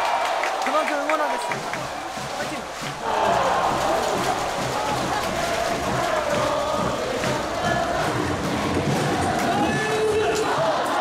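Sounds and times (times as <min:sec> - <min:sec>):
loud cheer song with beat: 0:00.0 - 0:11.0
crowd singing and chanting: 0:01.5 - 0:11.0.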